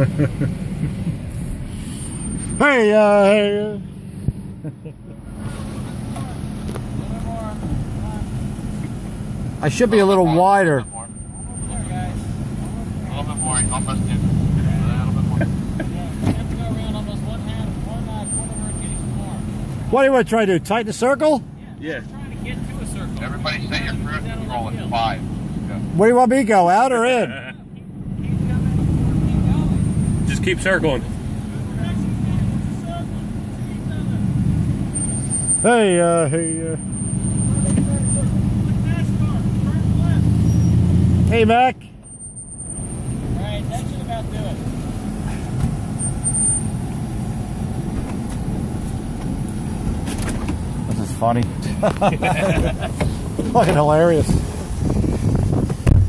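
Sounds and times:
truck engines rumbling low: 0.0 - 56.0.

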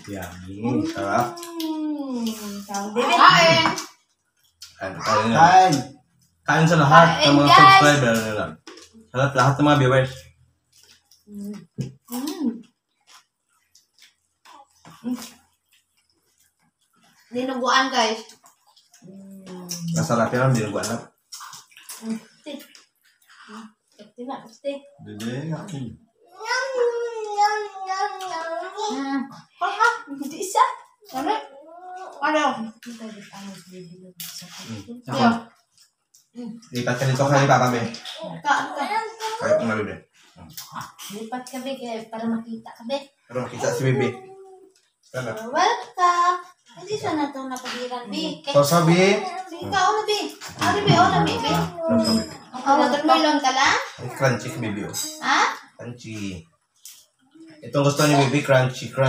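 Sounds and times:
person humming with relish: 0.6 - 3.5, 19.0 - 20.0, 50.6 - 52.5
person wordless vocal sound: 34.6 - 35.4, 50.5 - 52.5.

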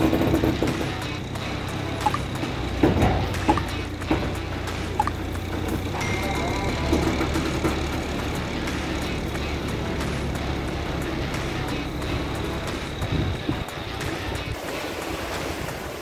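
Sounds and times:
truck diesel engine droning: 0.0 - 16.0.

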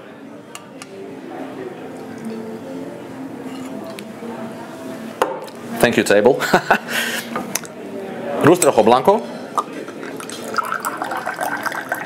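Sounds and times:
juice trickling into glass: 9.9 - 12.0.

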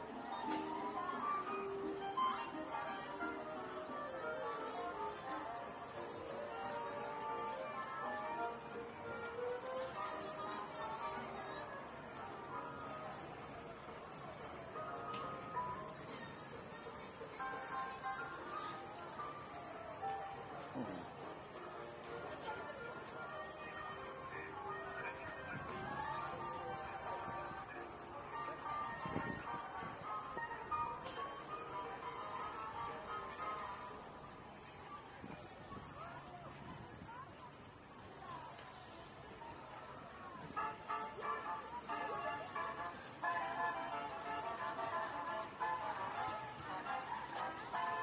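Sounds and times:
cicadas buzzing: 0.0 - 48.0
faint music: 0.0 - 48.0.

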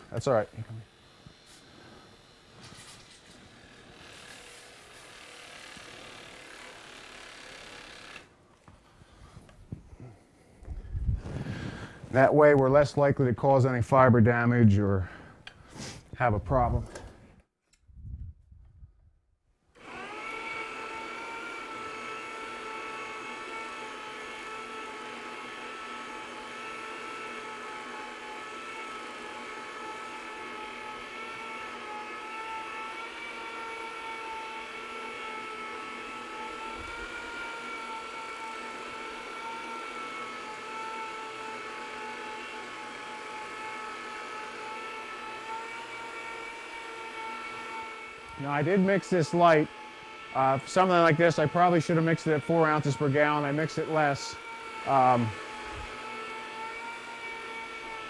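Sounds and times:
carpet cleaning machine motor whine: 19.8 - 58.0.

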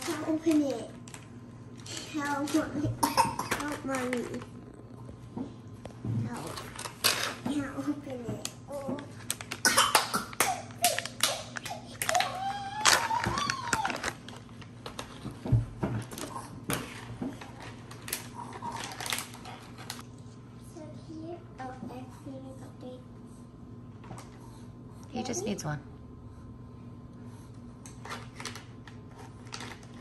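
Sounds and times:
young child's voice: 0.0 - 1.0, 1.9 - 4.6, 7.4 - 9.2, 10.8 - 14.0, 20.6 - 23.2
plastic snack pouch crinkling: 9.2 - 9.7, 10.3 - 15.0, 17.9 - 20.0.

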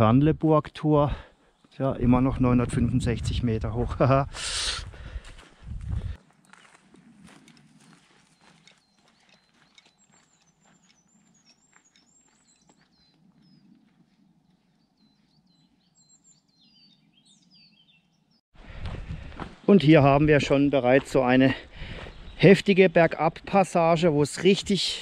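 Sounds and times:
footsteps on gravel trail: 3.8 - 15.8, 18.7 - 23.2
songbird chirping: 6.2 - 18.5, 19.5 - 25.0.

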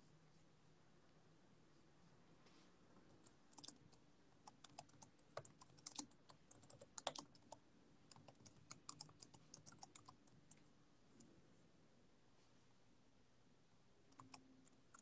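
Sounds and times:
low room hum: 0.0 - 15.0
typing on computer keyboard: 3.5 - 10.4, 14.2 - 15.0.

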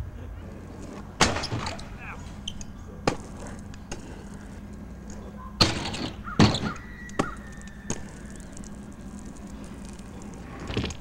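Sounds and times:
scooter clattering on concrete: 0.4 - 11.0
scooter deck and wheels clacking: 0.4 - 11.0.

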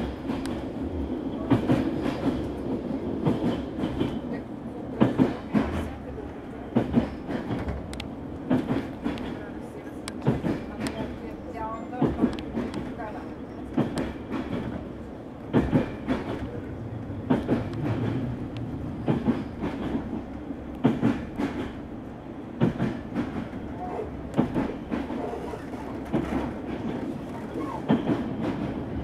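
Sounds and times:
train wheels clattering over rail joints: 0.0 - 0.8, 1.4 - 6.0, 6.7 - 11.2, 11.9 - 21.9, 22.6 - 29.0
rumble of moving train: 0.0 - 29.0.

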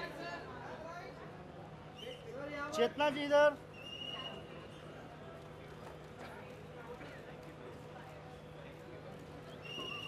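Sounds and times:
faint background chatter: 0.0 - 10.0.

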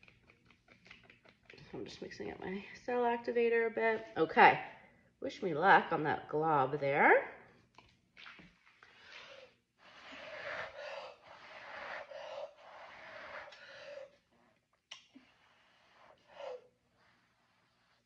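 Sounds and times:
person blowing hissy breaths: 9.0 - 14.2.

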